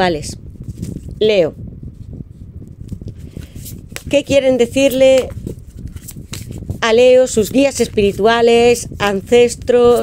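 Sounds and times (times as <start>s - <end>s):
cards rustling while shuffled: 0.6s - 1.2s, 2.8s - 10.0s.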